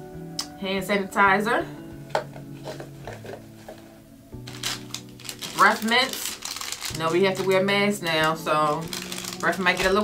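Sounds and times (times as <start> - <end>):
bag rustling: 2.6 - 10.0.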